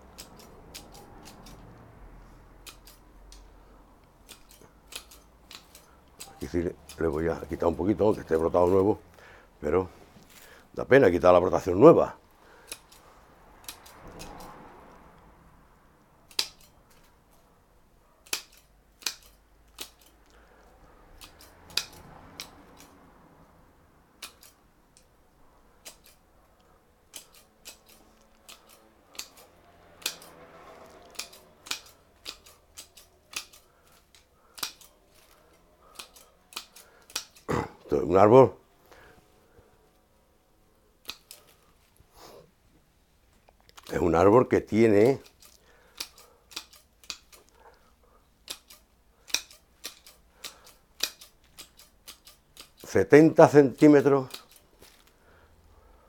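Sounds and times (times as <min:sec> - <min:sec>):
pruning shears snipping: 0:00.1 - 0:01.8, 0:02.6 - 0:09.0, 0:12.6 - 0:14.6, 0:16.3 - 0:17.2, 0:18.2 - 0:20.4, 0:21.2 - 0:23.0, 0:24.2 - 0:25.1, 0:25.7 - 0:26.3, 0:27.0 - 0:38.1, 0:41.0 - 0:41.7, 0:43.7 - 0:47.8, 0:48.4 - 0:55.2.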